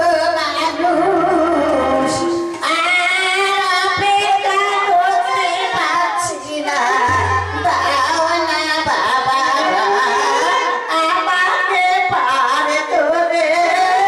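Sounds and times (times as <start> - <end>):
high voice singing devotional song: 0.0 - 14.0
instrumental accompaniment: 5.8 - 11.0
low held bass note: 7.1 - 9.1.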